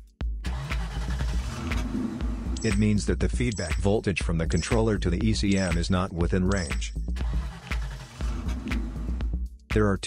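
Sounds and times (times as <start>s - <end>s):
background music: 0.0s - 10.0s
car engine starting and running: 0.4s - 3.8s, 6.5s - 9.4s.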